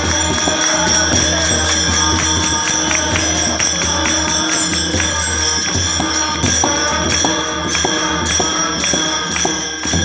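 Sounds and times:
group devotional singing: 0.0s - 10.0s
small hand cymbals ringing: 0.0s - 10.0s.

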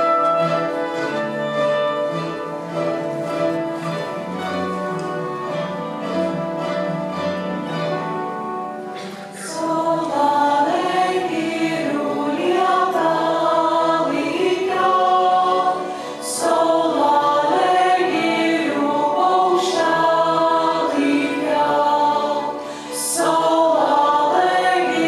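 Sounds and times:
choir singing: 8.0s - 25.0s.

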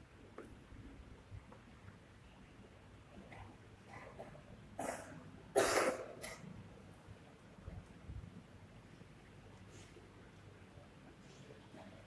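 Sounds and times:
person coughing: 4.8s - 6.4s.

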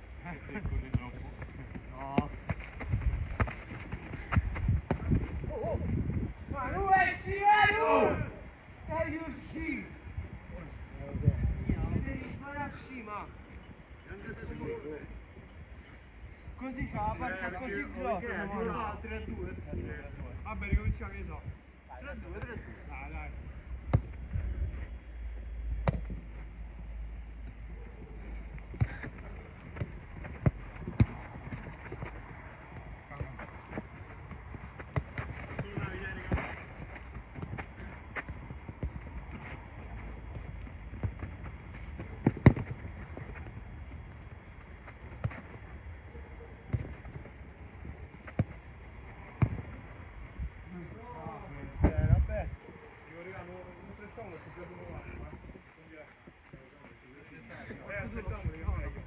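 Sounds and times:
football kick thuds: 1.7s - 6.0s, 25.8s - 26.2s, 28.7s - 32.1s, 40.3s - 43.4s
distant players shouting: 6.6s - 10.0s.

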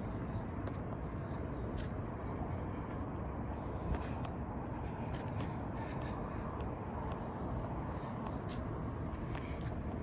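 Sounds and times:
road noise rumble: 0.0s - 10.0s.

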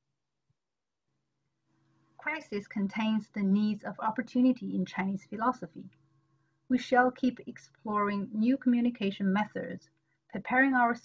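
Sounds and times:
very faint hum: 1.1s - 11.0s.

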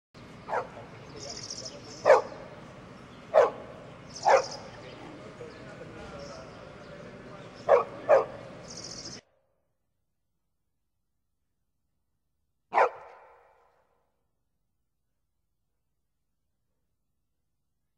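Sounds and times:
dog barking: 0.5s - 0.9s, 2.0s - 2.5s, 3.3s - 4.7s, 7.6s - 8.4s, 12.7s - 13.6s.

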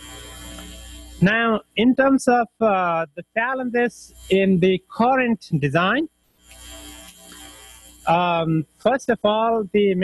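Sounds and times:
faint steady hiss: 0.0s - 10.0s.

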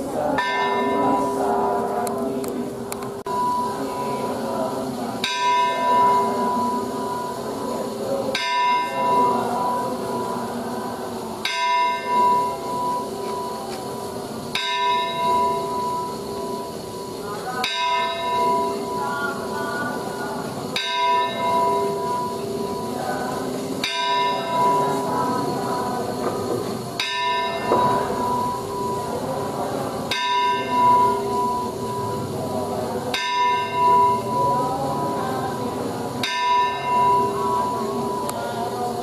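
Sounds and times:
murmur of crowd voices: 0.0s - 39.0s
temple bell ringing: 0.0s - 39.0s.

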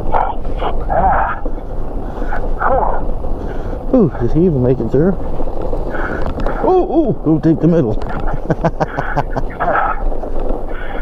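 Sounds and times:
tyre rumble on snow: 0.0s - 11.0s
wind on microphone: 0.0s - 11.0s.

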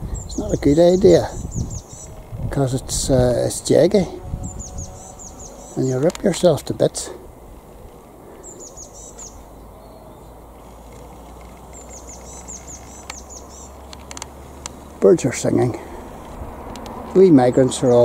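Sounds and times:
songbird singing high notes: 0.1s - 2.3s, 4.2s - 6.5s, 8.4s - 10.4s, 11.6s - 13.9s
faint clicks: 10.6s - 14.8s.

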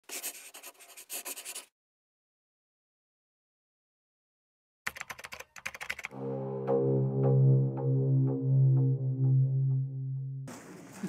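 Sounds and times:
pen scribbling on paper: 0.0s - 1.7s.

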